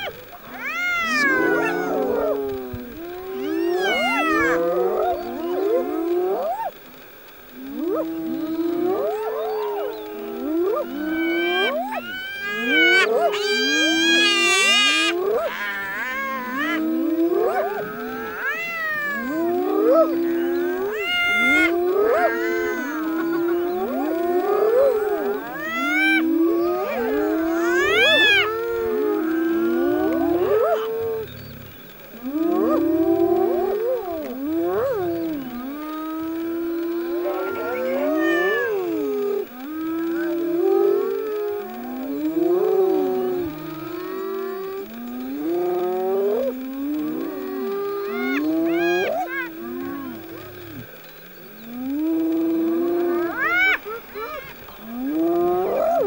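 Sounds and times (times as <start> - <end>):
hyenas calling and whooping: 0.0 - 56.0.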